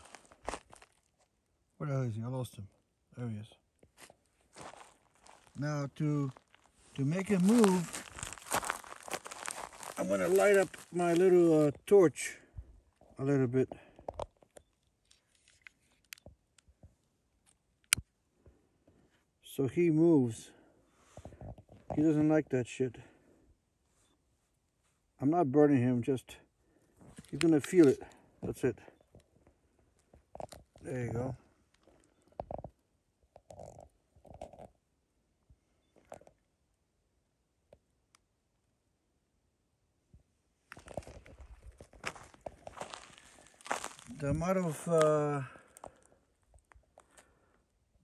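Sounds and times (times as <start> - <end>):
small clicks and handling noises: 14.0 - 18.1.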